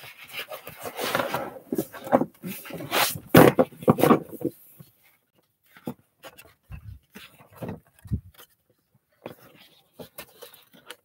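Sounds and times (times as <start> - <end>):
paper rustling and sliding: 0.0 - 4.5.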